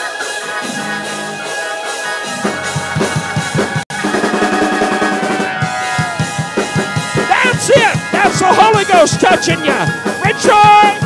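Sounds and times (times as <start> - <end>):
live praise music: 0.0 - 11.0
drum kit rolls and hits: 2.3 - 11.0.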